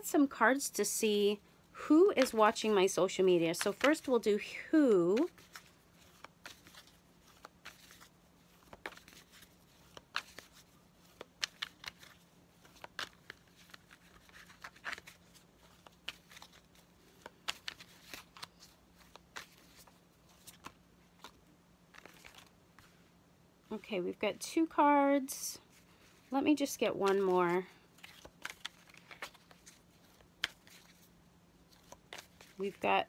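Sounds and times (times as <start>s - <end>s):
cards being shuffled: 2.0s - 23.1s, 25.6s - 32.9s.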